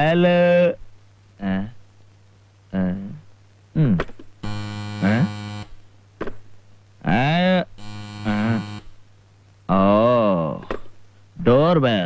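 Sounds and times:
garbled voice from telephone earpiece: 0.0 - 0.8, 1.4 - 1.8, 2.7 - 4.1, 7.0 - 7.7, 9.7 - 10.8
steady telephone buzz: 4.4 - 5.9, 7.7 - 9.0.

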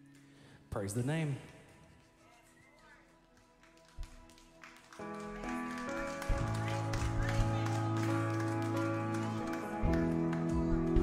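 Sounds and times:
worship band music: 5.0 - 11.0.

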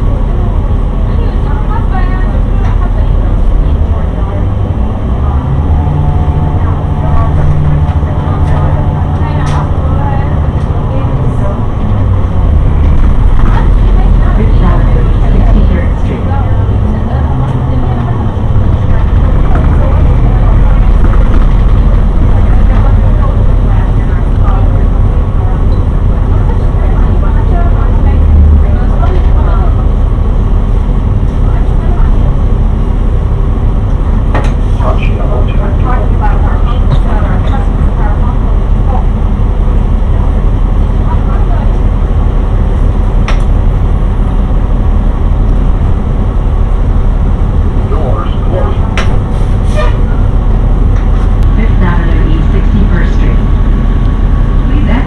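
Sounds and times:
bus engine and road rumble: 0.0 - 55.0.

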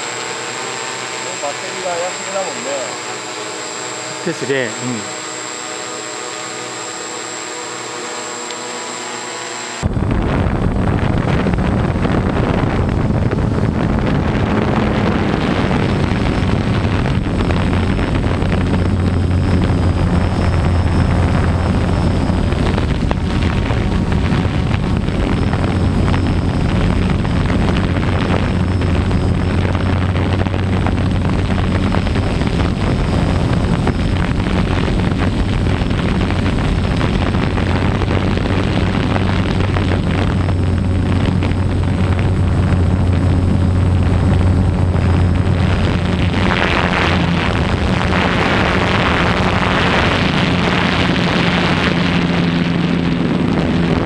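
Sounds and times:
drone rotors humming: 0.0 - 54.0
wind noise: 0.0 - 54.0.

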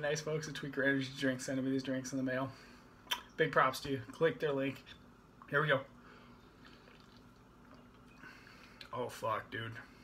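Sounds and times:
man sipping and swallowing: 6.3 - 8.9.

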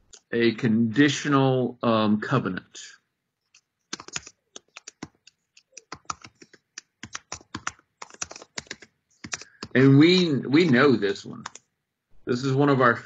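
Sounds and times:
computer keyboard typing: 3.5 - 11.7.

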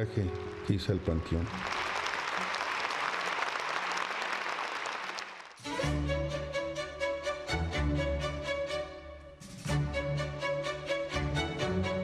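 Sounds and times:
music: 0.0 - 2.8, 5.6 - 12.0
audience applauding: 0.0 - 5.8.

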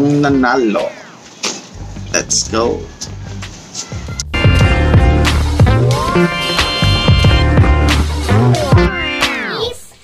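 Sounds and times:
electronic music sting: 4.3 - 9.7.

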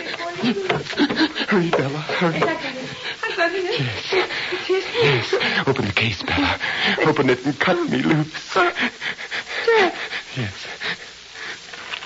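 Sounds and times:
faint background hiss: 0.0 - 12.0
breath: 8.8 - 11.8.

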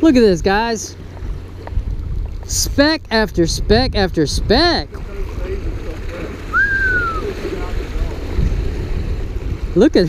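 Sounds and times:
wind rumble on microphone: 0.0 - 10.0
surf washing over rocks: 4.8 - 10.0
whistle-like tone: 6.5 - 7.3.

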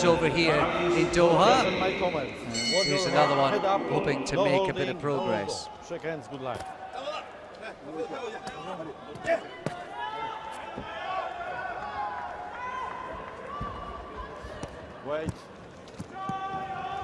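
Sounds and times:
indistinct voices echoing: 0.0 - 5.8.

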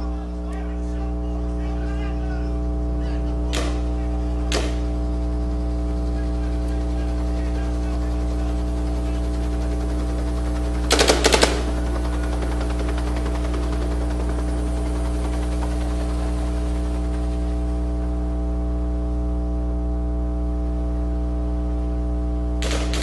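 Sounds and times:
electrical mains hum: 0.0 - 23.0
rapid gunshots: 3.0 - 18.2, 22.6 - 23.0.

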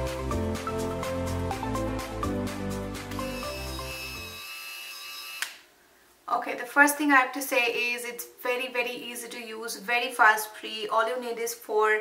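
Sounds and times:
piano background music: 0.0 - 4.4
high-pitched motor whine: 3.4 - 5.5.

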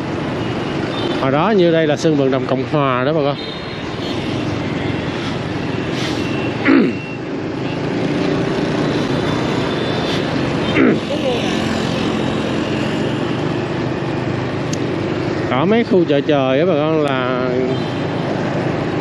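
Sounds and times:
engine hum and road noise: 0.0 - 19.0
street traffic: 0.0 - 19.0.

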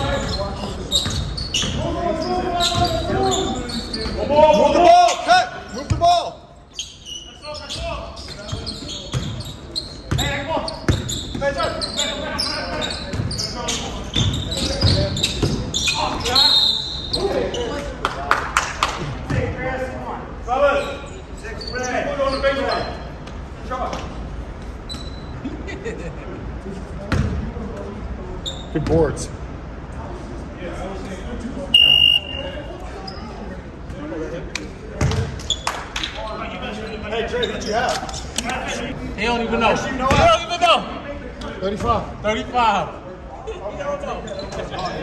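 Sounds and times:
basketball bouncing on gym floor: 8.3 - 9.4, 10.9 - 11.6, 27.1 - 27.4, 35.0 - 35.4.

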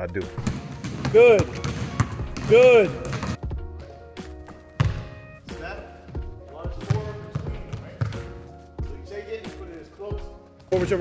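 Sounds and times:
background music: 0.0 - 11.0
basketball bouncing on hardwood: 0.4 - 3.6, 4.8 - 5.2, 6.8 - 8.3.

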